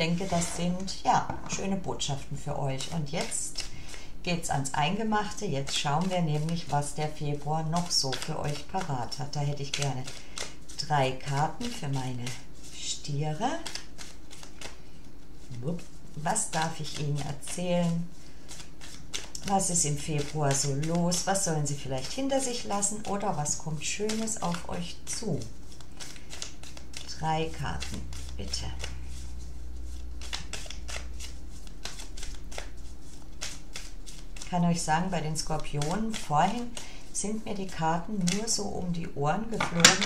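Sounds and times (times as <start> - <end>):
cards being shuffled: 0.0 - 4.1, 4.9 - 12.8, 13.4 - 40.0.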